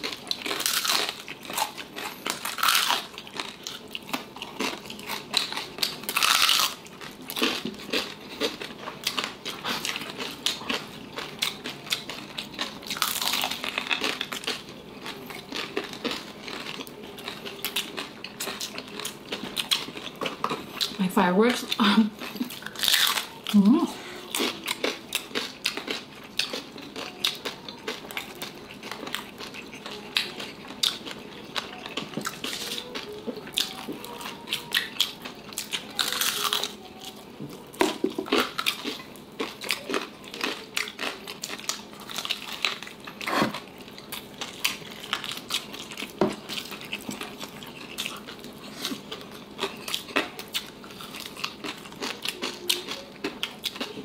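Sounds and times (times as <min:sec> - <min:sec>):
crunching and chewing crispy skin: 0:00.0 - 0:54.0.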